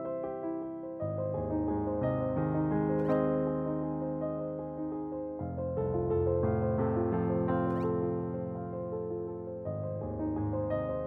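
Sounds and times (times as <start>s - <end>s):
soft piano music: 0.0s - 11.0s.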